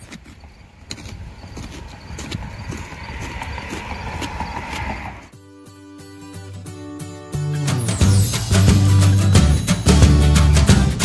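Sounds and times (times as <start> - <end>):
background music with held notes: 5.3 - 11.0.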